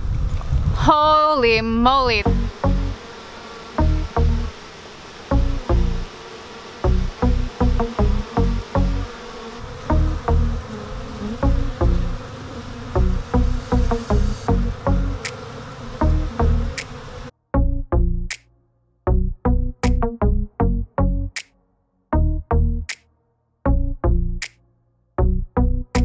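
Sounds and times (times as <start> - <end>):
honey bees buzzing: 1.7 - 17.3
background music with punchy bass: 13.0 - 15.2, 17.6 - 18.4, 19.1 - 21.4, 22.2 - 23.0, 23.7 - 24.6, 25.2 - 26.0.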